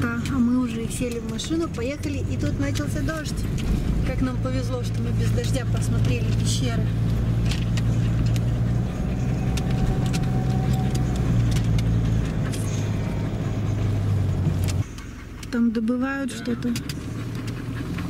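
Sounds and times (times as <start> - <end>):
car engine and road hum: 0.0 - 18.0.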